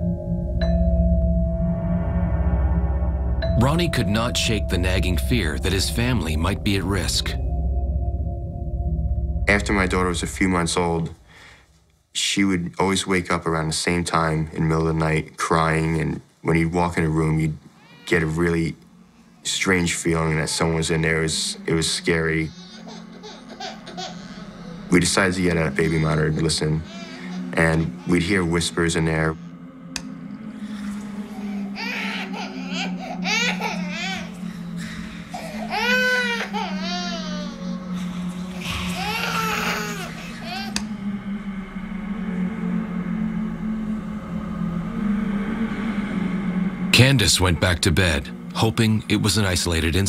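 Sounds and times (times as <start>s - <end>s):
faint high tones: 0.0s - 11.6s
low synthesized drone: 0.0s - 17.4s, 18.3s - 50.0s
baby babbling: 31.3s - 34.3s, 35.4s - 37.9s, 38.6s - 40.8s.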